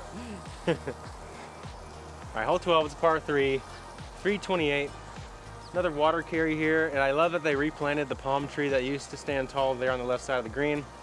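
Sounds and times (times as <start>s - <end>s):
quiet background music with bass: 0.0s - 11.0s
man speaking: 2.3s - 4.9s, 5.7s - 10.9s.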